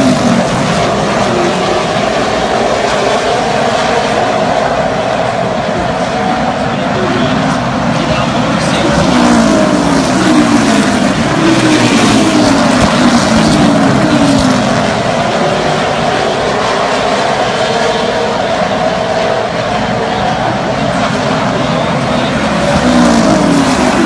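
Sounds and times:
race car engines passing: 0.0s - 24.0s.

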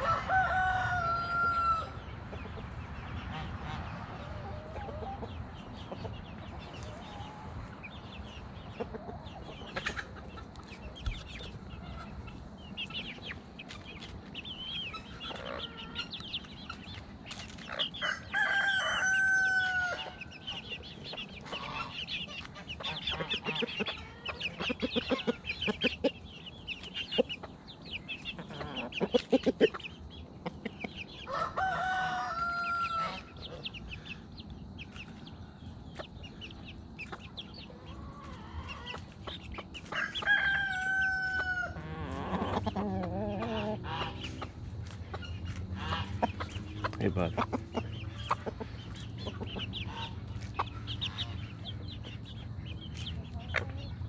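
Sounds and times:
rooster crowing: 0.0s - 2.0s, 18.0s - 20.2s, 31.2s - 33.4s, 39.9s - 42.0s
chicks peeping: 0.0s - 54.0s
hens clucking: 0.0s - 54.0s.

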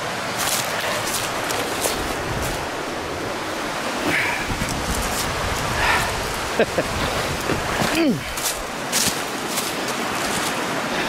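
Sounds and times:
footsteps crunching dry leaves: 0.0s - 5.8s, 7.6s - 10.9s
waterfall rushing: 0.0s - 11.0s.

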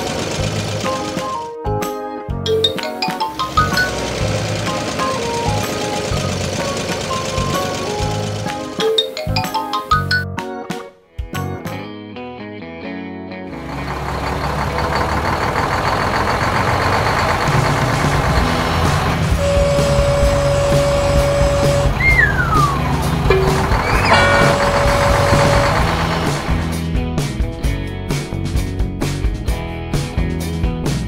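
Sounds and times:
cartoon truck engine rumble: 0.0s - 1.2s, 2.5s - 9.7s, 13.5s - 27.3s
steady high tone: 19.4s - 26.7s
falling whistle-like glide: 20.8s - 22.9s.

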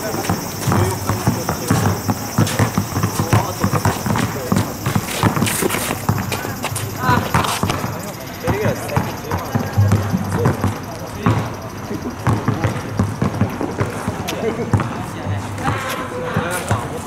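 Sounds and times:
basketball bouncing on asphalt: 0.0s - 17.0s
people's voices: 0.0s - 17.0s.

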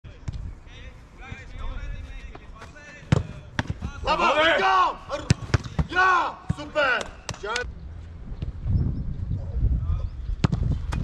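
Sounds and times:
balls thudding: 2.2s - 4.0s, 5.1s - 7.6s
football kicked hard: 3.0s - 4.0s, 5.2s - 6.7s, 10.4s - 11.0s.

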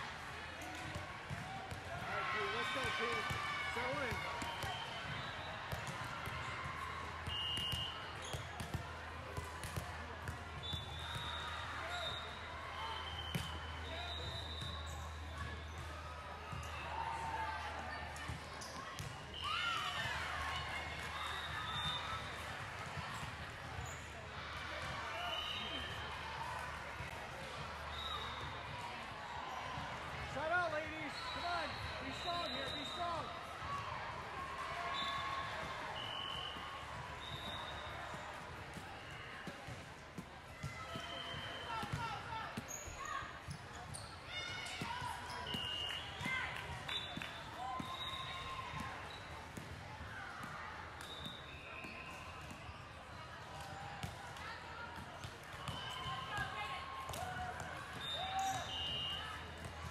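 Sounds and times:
shoe squeaks: 42.7s - 43.1s.

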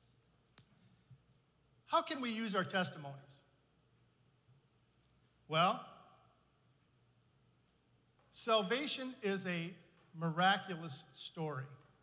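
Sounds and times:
man speaking: 1.9s - 3.5s, 5.5s - 6.0s, 8.4s - 11.8s.

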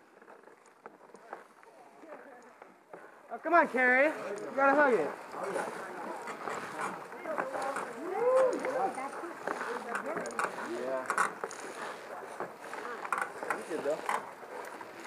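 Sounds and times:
creaking wood and rope: 0.0s - 15.0s
footsteps on wooden planks: 0.0s - 15.0s.

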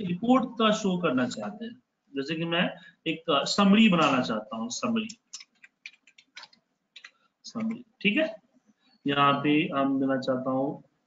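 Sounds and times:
keyboard keys clicking: 5.0s - 7.8s.

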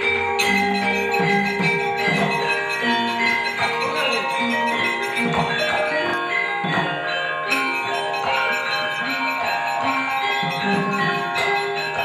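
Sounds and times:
struck metallophones and gongs: 0.0s - 12.0s.

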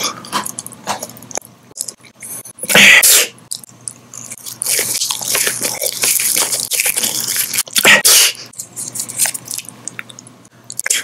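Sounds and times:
wet chewing of gummy candy: 3.5s - 7.9s, 8.5s - 11.0s.

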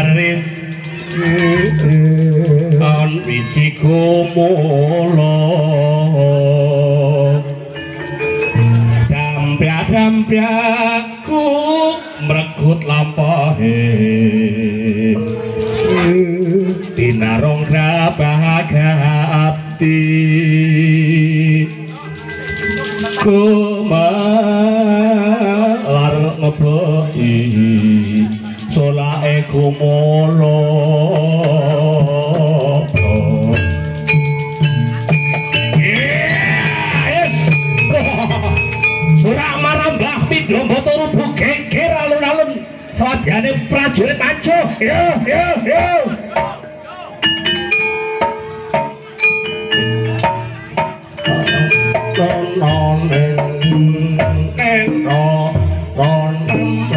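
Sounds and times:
person singing wavering line: 0.0s - 43.0s, 44.6s - 56.9s
metallophone ringing notes: 7.3s - 12.7s, 17.7s - 25.5s, 33.0s - 42.6s, 43.6s - 56.9s.

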